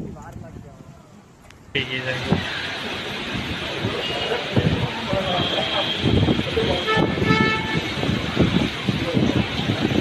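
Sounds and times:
heavy rain: 0.0s - 10.0s
storm wind gusting: 1.8s - 10.0s
car horn: 5.2s - 8.1s.

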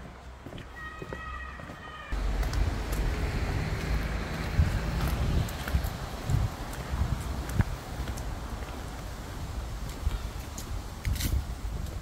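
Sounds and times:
footsteps on stone path: 0.0s - 12.0s
wind buffeting microphone: 2.2s - 12.0s.

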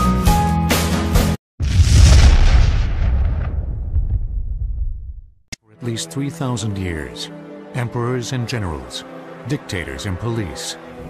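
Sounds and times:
deep boom with rumbling tail: 1.6s - 5.4s.

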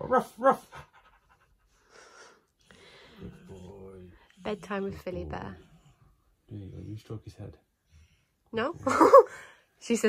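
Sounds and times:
faint breath: 1.7s - 3.5s.

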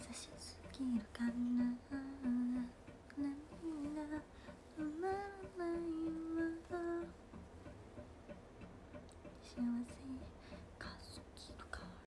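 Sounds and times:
woman singing: 0.0s - 7.2s, 9.4s - 12.0s.

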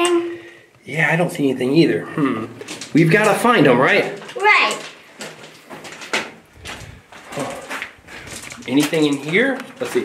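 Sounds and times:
footsteps scuffing: 4.1s - 10.0s.

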